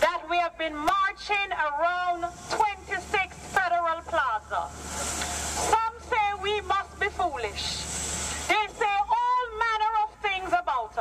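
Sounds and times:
steady hiss: 1.9 - 9.2.

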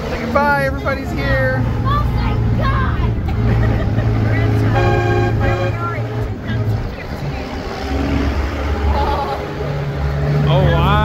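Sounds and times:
truck engine deep drone: 0.0 - 11.0.

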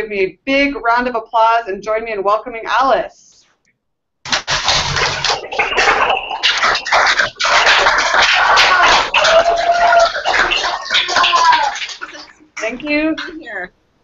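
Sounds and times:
audience applauding and cheering: 4.3 - 12.4
voices whooping: 8.3 - 12.3.

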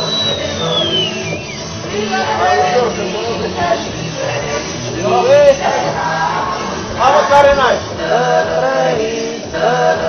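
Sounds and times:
high whistle gliding downward: 0.0 - 1.7.

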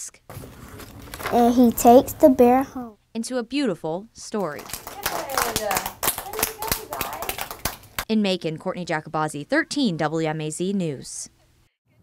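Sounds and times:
children clapping unevenly: 4.6 - 8.0.

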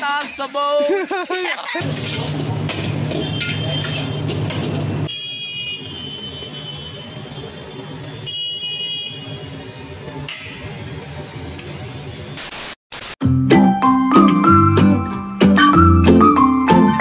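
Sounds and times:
tv static burst: 12.4 - 13.2.

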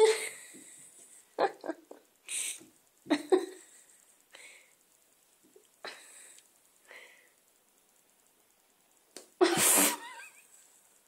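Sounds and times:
cat hissing: 9.5 - 10.2.

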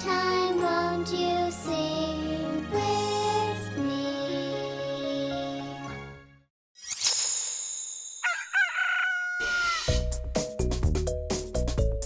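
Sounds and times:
bouncy children's music: 0.0 - 6.3
rooster crowing: 8.2 - 10.0.

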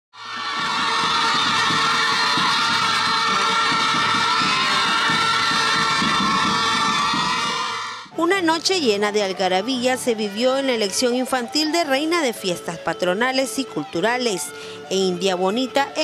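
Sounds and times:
children shouting and cheering: 0.2 - 8.1
music: 0.2 - 16.0.

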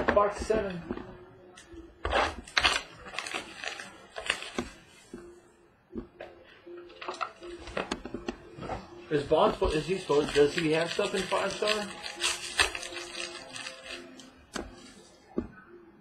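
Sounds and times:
plastic wrap crinkling and tearing: 2.1 - 4.8, 9.6 - 14.3.

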